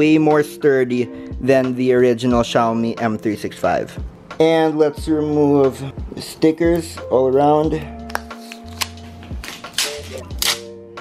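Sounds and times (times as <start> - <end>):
background music with low notes: 0.0 - 11.0
plastic film ripping: 8.4 - 10.7.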